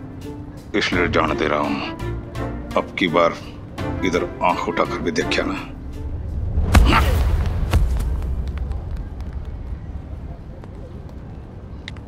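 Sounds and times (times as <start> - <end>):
low street rumble: 0.0 - 12.0
faint clicks: 8.4 - 12.0.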